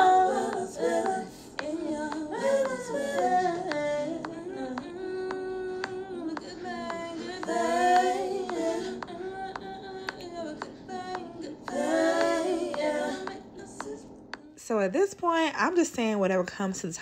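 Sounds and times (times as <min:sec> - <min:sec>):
sparse clicking beat: 0:00.0 - 0:14.5
woman singing with backing vocals: 0:00.0 - 0:14.9.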